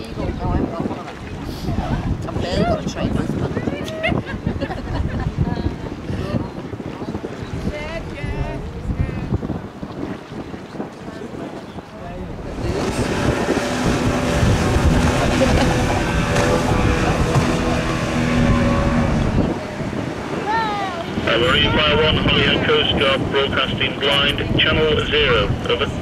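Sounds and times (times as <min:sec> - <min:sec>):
wind on microphone: 0:00.0 - 0:26.0
river ambience: 0:09.7 - 0:26.0
ships' horns sounding together: 0:12.6 - 0:19.6.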